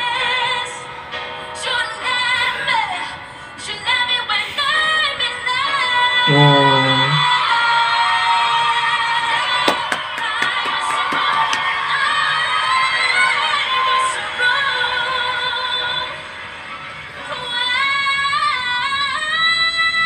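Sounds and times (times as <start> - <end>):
woman singing with vibrato: 6.2 - 7.4
lower-pitched voice: 6.3 - 7.3.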